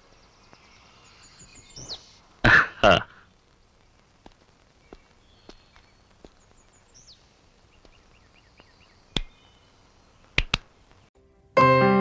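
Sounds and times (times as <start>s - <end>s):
sharp cracks: 9.1s - 9.4s, 10.2s - 11.1s
keyboard music: 11.2s - 12.0s.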